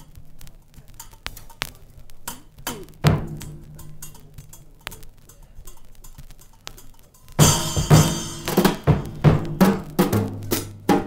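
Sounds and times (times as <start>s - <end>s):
drum kit sharp taps: 0.0s - 11.0s.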